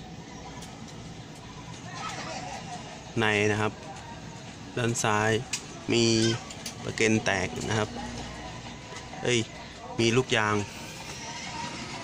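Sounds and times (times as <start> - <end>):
low background noise: 0.0 - 12.0
man speaking: 4.8 - 8.1, 9.2 - 10.7.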